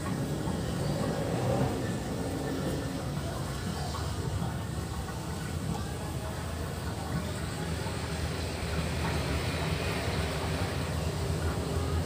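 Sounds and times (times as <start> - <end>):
hose water running into pond: 0.0 - 12.0.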